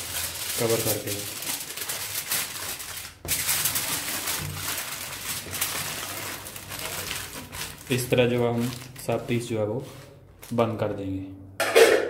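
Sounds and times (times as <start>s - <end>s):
aluminium foil crinkling: 0.0s - 11.0s.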